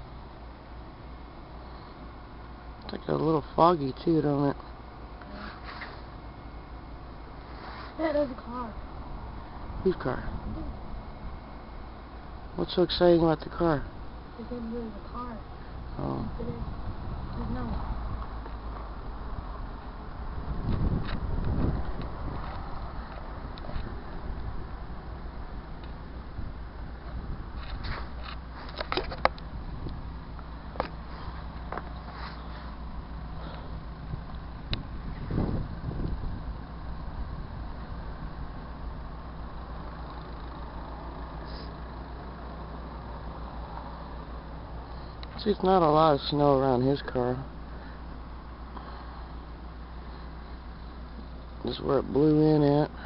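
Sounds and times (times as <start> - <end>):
vehicle engines humming: 0.0 - 53.0.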